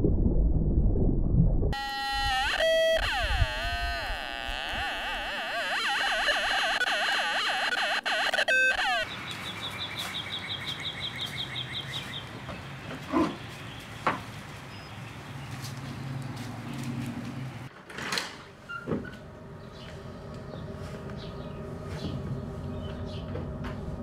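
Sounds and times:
warbling electronic tone: 0.0s - 9.1s
electronic beeps: 1.8s - 9.1s.

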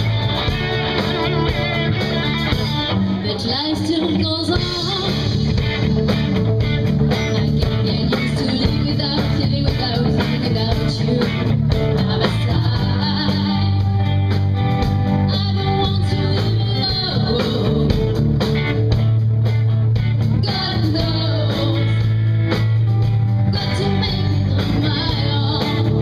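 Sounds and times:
live rock band playing: 0.0s - 26.0s
woman singing: 3.2s - 6.3s, 7.3s - 14.1s, 15.1s - 18.3s, 20.3s - 22.2s, 23.4s - 26.0s.

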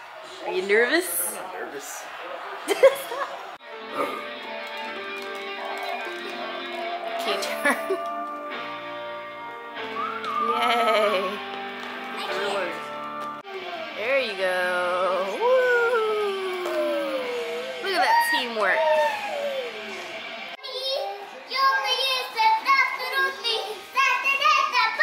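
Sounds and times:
music: 3.6s - 20.6s
children's sing-song calls and squeals: 16.4s - 25.0s.

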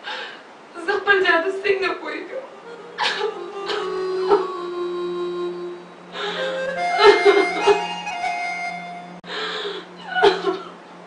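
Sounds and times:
low background drone: 0.0s - 11.0s
woman sobbing and wailing: 2.3s - 8.1s.

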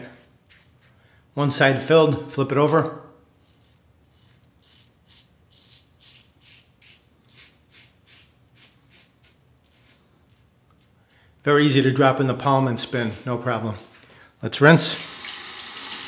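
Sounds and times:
razor scraping stubble: 0.4s - 1.0s, 3.4s - 11.2s.

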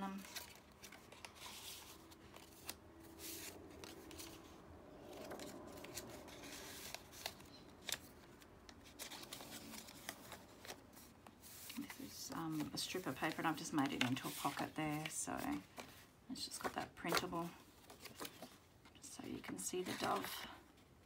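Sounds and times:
journal page turning: 0.0s - 18.6s, 19.3s - 20.4s
paper rustling and sliding: 0.2s - 18.6s.

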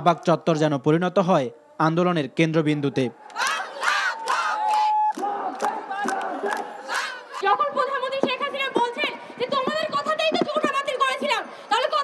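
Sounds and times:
crowd shouting slogans: 3.2s - 7.5s
rhythmic hand clapping: 4.2s - 7.2s.

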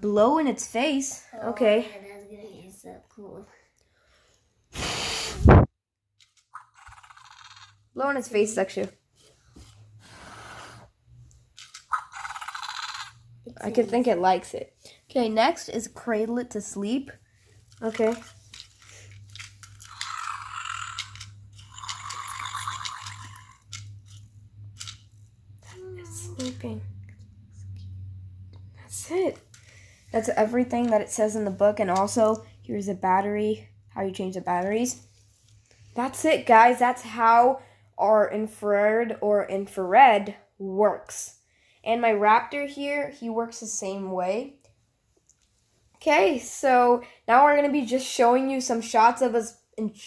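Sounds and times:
breath blown at microphone: 4.7s - 5.7s
toy rasping breaths: 6.4s - 7.8s, 18.8s - 23.9s
toy voice-like call: 21.8s - 23.6s.

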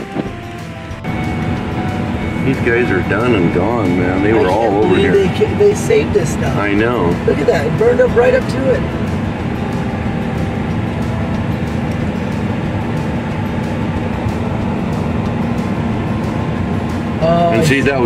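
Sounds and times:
vehicle engine and tyres hum: 0.0s - 18.0s.

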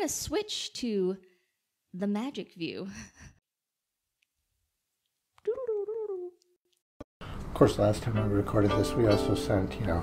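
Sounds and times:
woman's voice: 0.0s - 1.2s, 2.0s - 3.2s, 5.4s - 6.4s.

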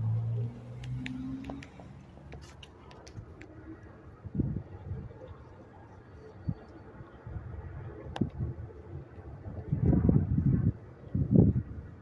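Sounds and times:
wind buffeting microphone: 4.1s - 5.5s, 6.3s - 12.0s.

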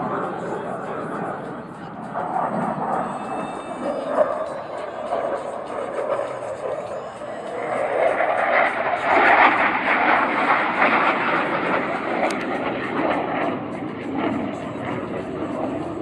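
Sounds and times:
fighter jet flying past: 0.0s - 16.0s.

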